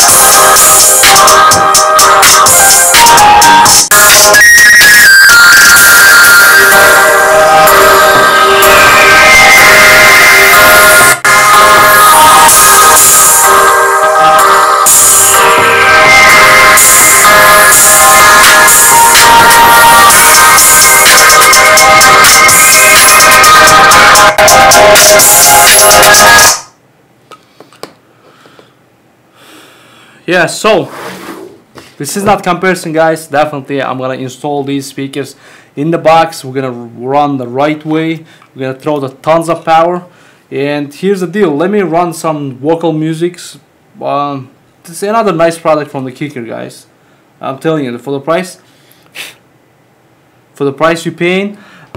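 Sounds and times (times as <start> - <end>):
electronic dance music through speaker: 0.0 - 26.7.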